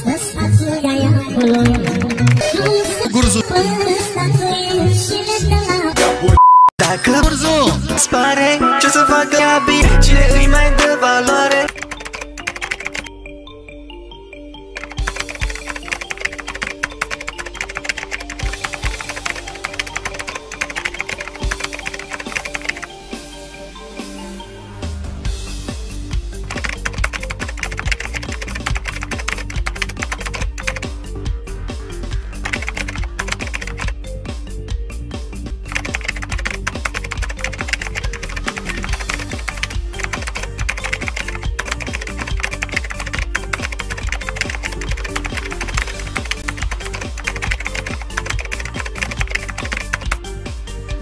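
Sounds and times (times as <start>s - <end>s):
background music with bass line: 0.0s - 11.6s, 23.0s - 51.0s
rapid typing clicks: 1.3s - 2.8s, 11.5s - 13.1s, 14.8s - 22.9s, 26.4s - 30.9s, 32.4s - 33.9s, 35.7s - 50.2s.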